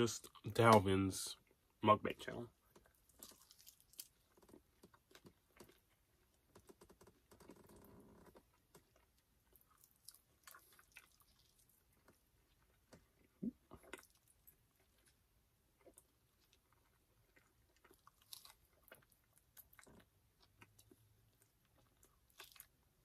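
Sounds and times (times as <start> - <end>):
close-up chewing and biting: 2.7 - 23.0.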